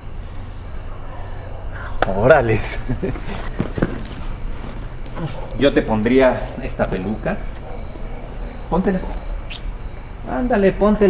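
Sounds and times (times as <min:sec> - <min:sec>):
crickets chirping: 0:00.0 - 0:11.0
faint knocks or rustles: 0:03.0 - 0:05.5.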